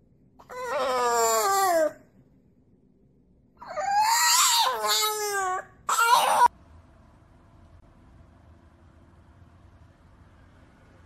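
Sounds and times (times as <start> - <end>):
dog howling: 0.4 - 2.0, 3.6 - 6.5.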